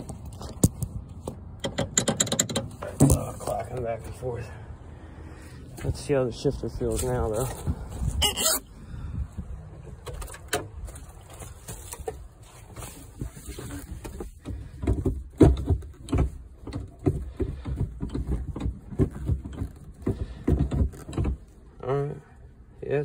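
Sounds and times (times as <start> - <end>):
gear lever clicks and clunks: 0.0 - 3.9, 9.8 - 11.0, 14.1 - 21.6.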